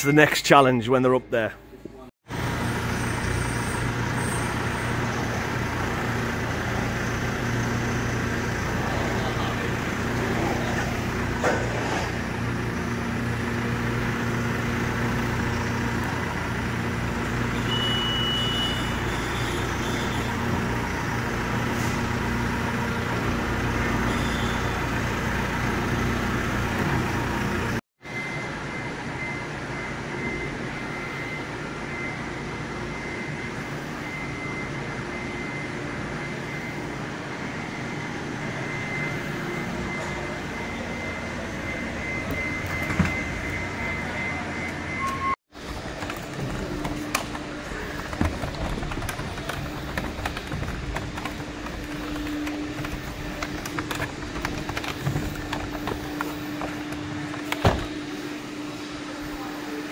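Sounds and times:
diesel engine running: 2.3 - 59.9
short high beep: 38.6 - 45.4.

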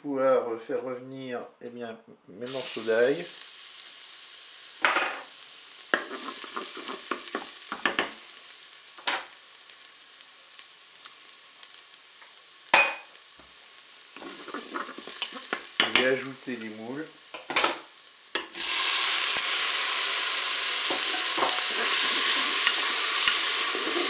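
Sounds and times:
garlic sizzling in hot oil: 2.4 - 24.0.

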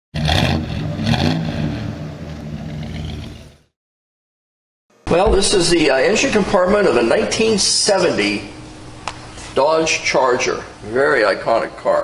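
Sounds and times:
car engine revving: 0.1 - 3.7.

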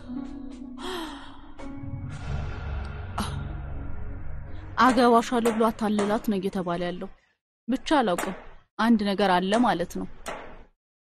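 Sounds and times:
soft background music: 0.0 - 7.1
person gasping and sighing: 0.8 - 1.6, 2.2 - 3.7.

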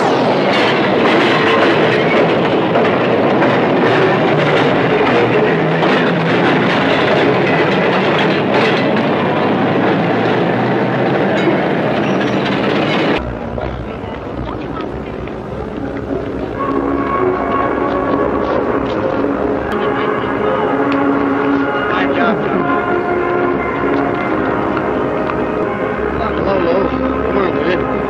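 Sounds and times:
street traffic: 0.0 - 28.0
trolley cars rail clatter: 0.0 - 28.0
crowd murmur: 13.2 - 28.0.

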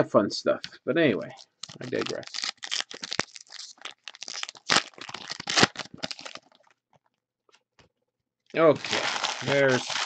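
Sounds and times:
foil wrappers crinkling and tearing: 1.6 - 6.7, 8.6 - 10.0.

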